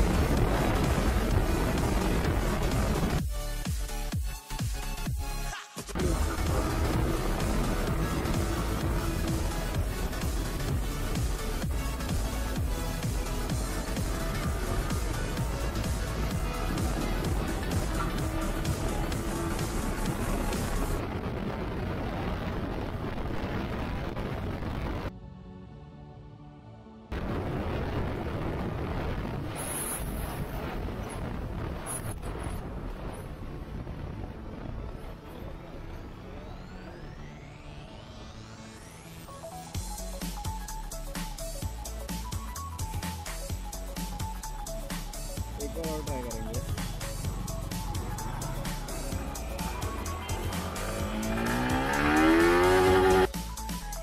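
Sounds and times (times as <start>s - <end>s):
wind and motorcycle riding noise: 6.0s - 25.1s, 27.8s - 36.6s, 47.6s - 53.3s.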